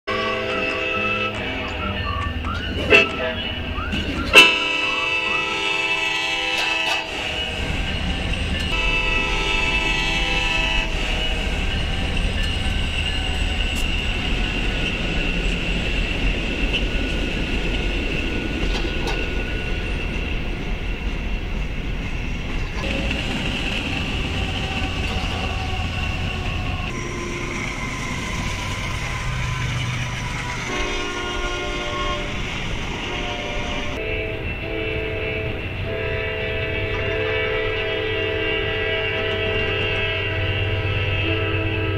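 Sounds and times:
locomotive air horn blasts: 0.1 - 1.6, 4.3 - 7.9, 8.6 - 11.7, 30.6 - 41.9
trains rumbling past: 0.1 - 41.9.

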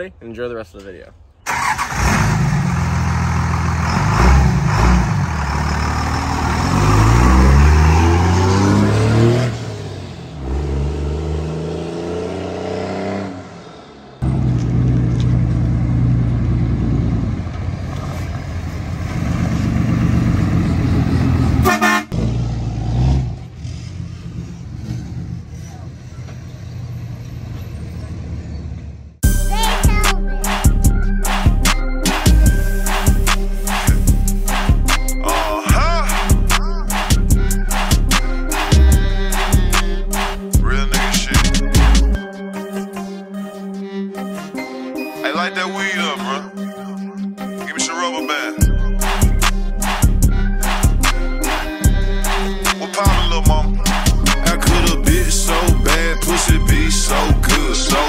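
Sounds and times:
truck engines running: 0.8 - 42.2
vehicle horns blowing: 21.5 - 22.2.

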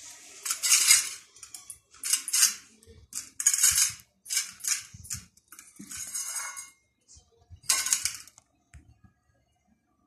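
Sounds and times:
metal bowl scraping on stone floor: 0.0 - 6.8.

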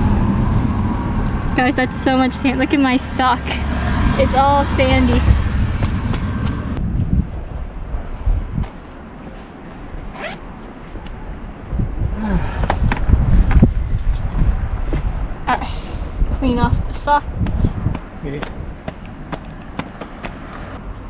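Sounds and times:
low rumble: 0.0 - 8.7
sneakers rustling and tapping: 17.9 - 20.6.

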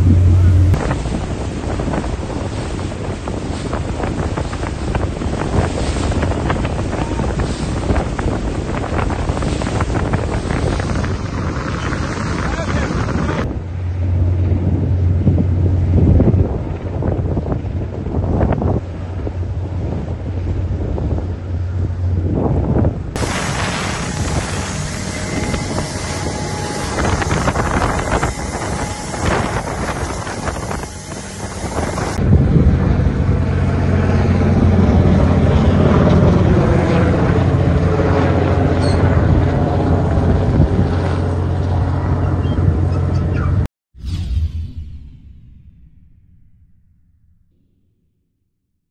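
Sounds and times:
water rushing past hull: 0.0 - 21.6, 23.1 - 37.5
boat engines humming: 0.0 - 43.6
wind buffeting microphone: 0.0 - 43.6.

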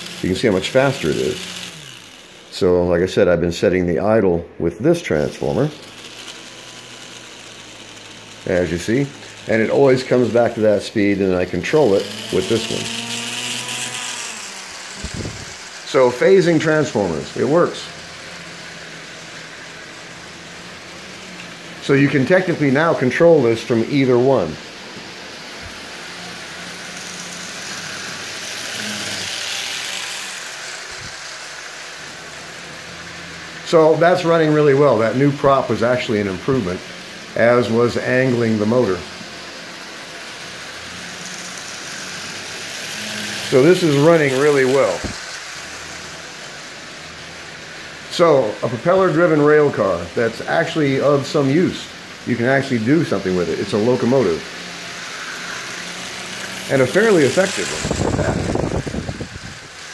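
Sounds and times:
small electric motor humming: 0.0 - 59.9.

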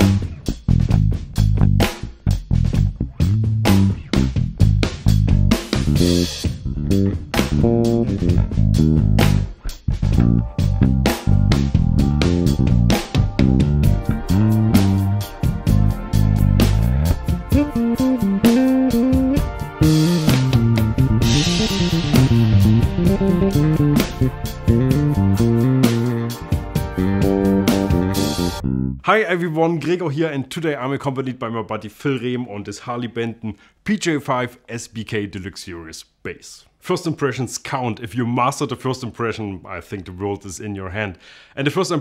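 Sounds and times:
electric bass riff: 0.0 - 29.0.

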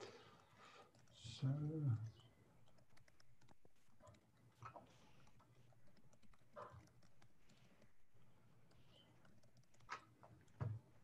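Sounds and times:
person speaking: 1.0 - 2.3
computer keyboard taps and clicks: 2.6 - 11.0.

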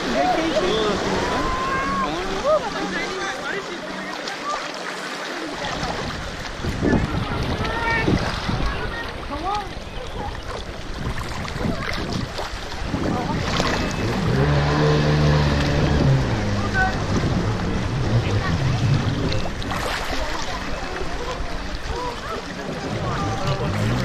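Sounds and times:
distant voices: 0.0 - 24.0
jet ski engine humming: 0.0 - 24.0
water sloshing and splashing: 0.0 - 24.0.

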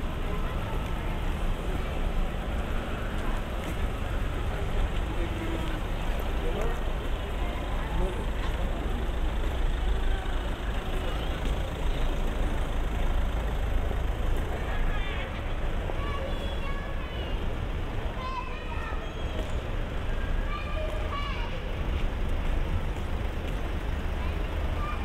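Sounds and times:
low rumble of engines and tyres: 0.0 - 25.0.

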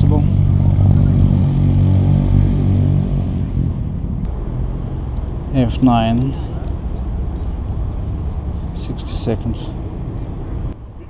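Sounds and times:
motor engine humming: 0.0 - 11.0.

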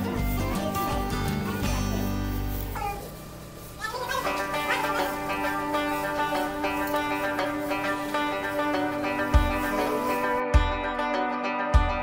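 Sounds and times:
background music with sustained tones: 4.2 - 12.0.

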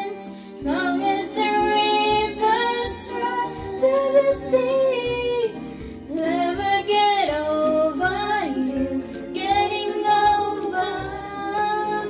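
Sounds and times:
girl singing karaoke: 0.0 - 12.0.

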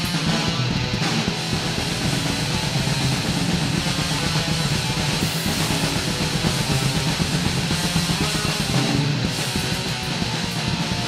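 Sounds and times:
distorted guitars and bass: 0.0 - 11.0
fast dense drumming: 0.0 - 11.0.

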